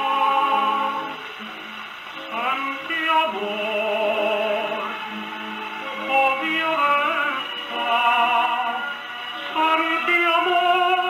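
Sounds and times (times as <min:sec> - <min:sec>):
tango song from old record: 0:00.0 - 0:11.0.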